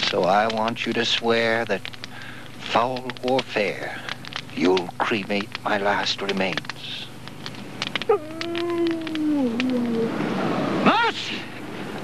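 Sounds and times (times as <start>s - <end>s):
faint clicks: 0.0s - 10.1s
dog howling: 8.0s - 10.9s.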